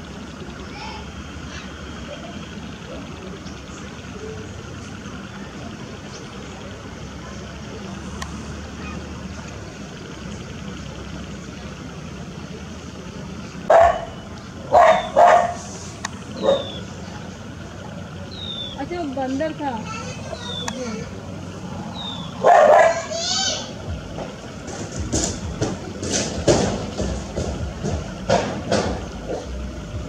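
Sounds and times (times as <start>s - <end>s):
background murmur: 0.0s - 30.0s
faint high bird chirps: 16.4s - 17.0s, 18.3s - 18.8s, 20.4s - 21.0s, 21.9s - 22.4s.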